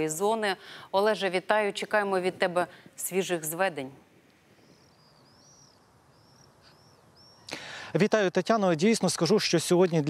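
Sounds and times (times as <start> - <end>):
bird chirps: 4.5 - 7.7.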